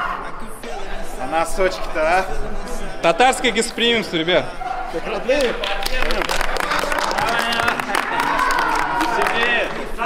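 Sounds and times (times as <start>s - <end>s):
men's voices: 0.0s - 10.0s
people clapping: 5.2s - 10.0s.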